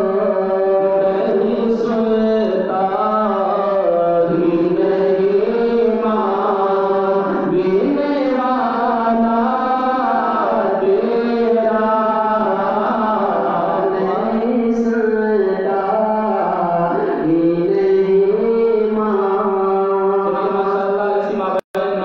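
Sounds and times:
men singing devotional song: 0.0 - 22.0.

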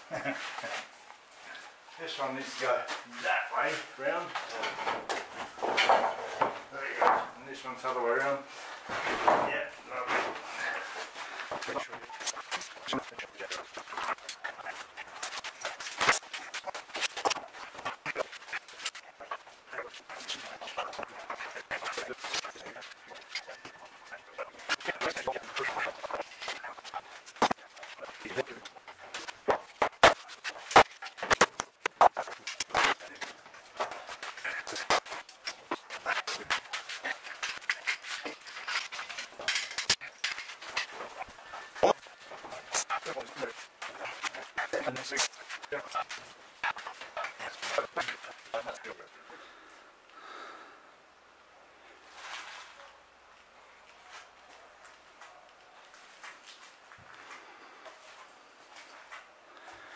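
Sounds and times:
metal clamps clicking and knocking: 38.6 - 41.0.

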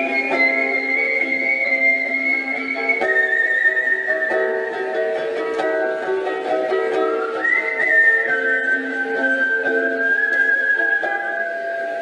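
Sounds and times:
ukulele chords: 0.0 - 12.0
whistled melody: 0.0 - 12.0.

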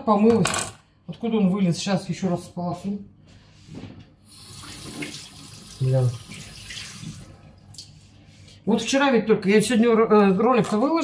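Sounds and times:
tap water running into sink: 4.4 - 7.9.

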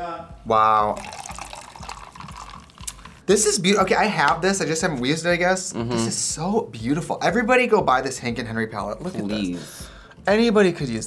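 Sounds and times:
fizzing drink pour: 1.0 - 3.2.

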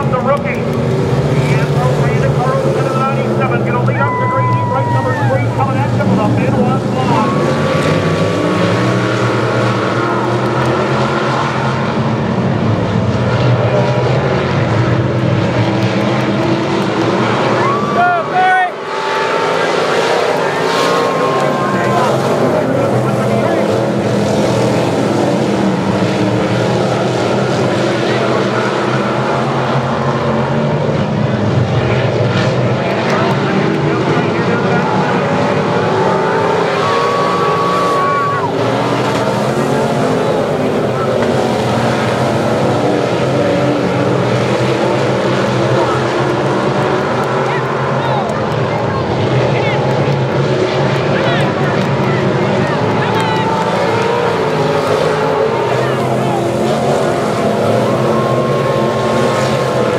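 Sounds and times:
race car engines roaring: 0.0 - 59.9.

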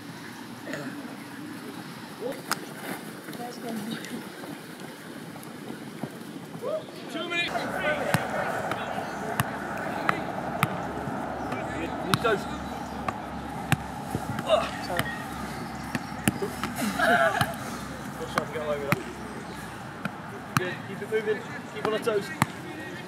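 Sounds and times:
faint chatter of players: 7.0 - 23.0
steady low hum: 7.5 - 21.8.

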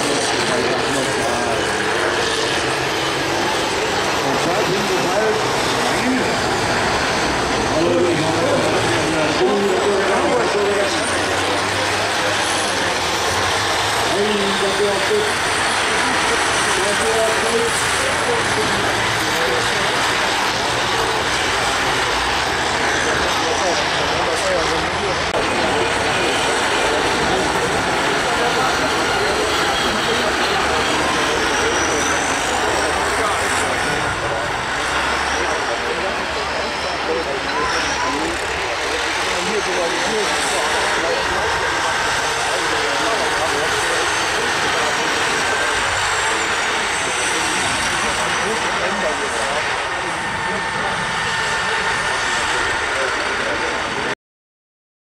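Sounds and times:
diesel engines running hard: 0.0 - 54.2.

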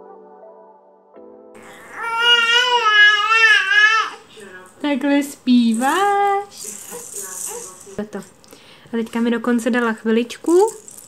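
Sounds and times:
baby cooing: 1.6 - 4.3.

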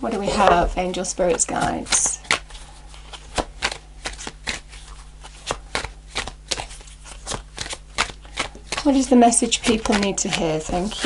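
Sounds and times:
cards being shuffled: 1.0 - 11.0.

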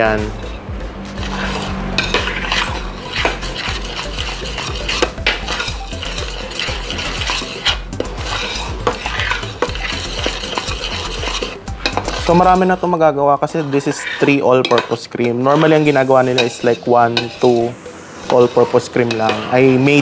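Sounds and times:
spoon scraping pot: 0.3 - 20.0
spoon clinking against pot: 2.0 - 12.3, 13.8 - 15.4.

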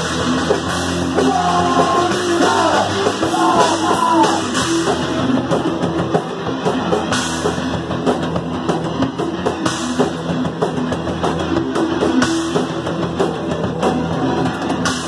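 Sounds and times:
punk band playing: 0.0 - 15.0.

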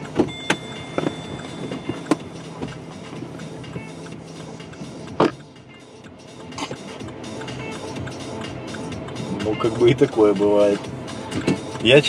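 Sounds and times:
car door opening: 0.0 - 5.8, 6.5 - 7.0, 11.2 - 11.8
steady low hum: 0.0 - 10.1
thin high tone: 0.3 - 5.0.

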